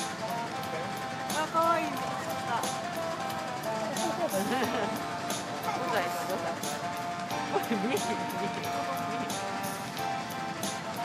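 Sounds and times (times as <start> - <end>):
background music: 0.0 - 11.0
people talking: 0.5 - 2.9, 3.7 - 6.8, 7.4 - 9.6.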